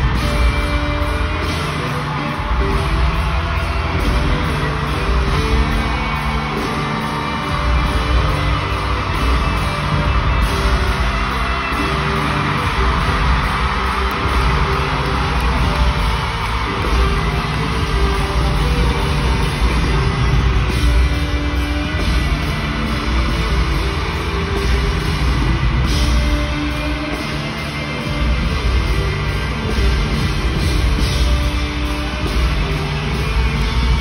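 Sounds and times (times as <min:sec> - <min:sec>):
drums: 0:00.0 - 0:34.0.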